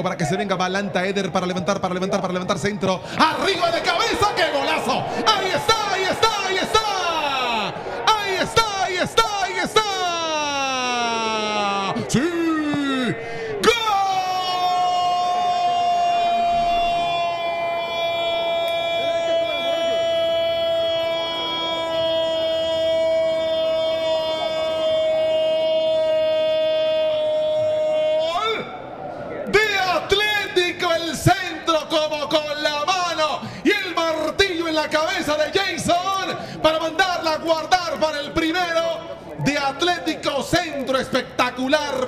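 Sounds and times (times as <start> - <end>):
commentator shouting goal cry: 3.1 - 28.7.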